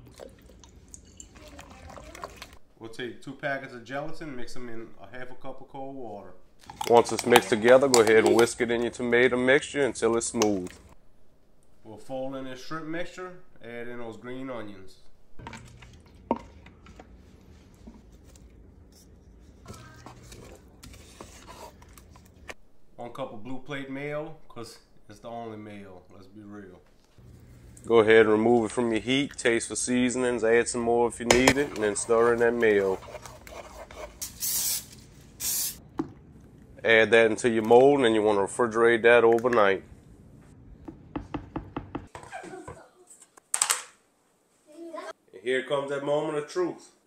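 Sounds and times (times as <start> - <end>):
stirring thick mixture in pot: 0.0 - 2.6, 19.4 - 22.6, 31.3 - 34.2
low steady hum: 0.0 - 33.7
spatula scraping a bowl: 20.0 - 21.9, 31.6 - 34.2
cooking spray hissing: 34.2 - 35.8.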